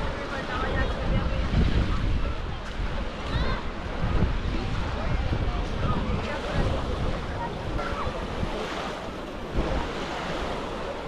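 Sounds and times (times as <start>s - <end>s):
faint voices: 0.0s - 11.0s
small waves washing on sand: 0.0s - 11.0s
wind buffeting microphone: 0.0s - 11.0s
children calling: 7.4s - 8.9s.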